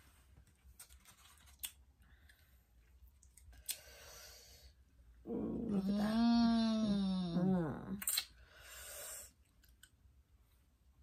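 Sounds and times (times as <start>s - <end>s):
person humming mmm: 5.3s - 8.0s.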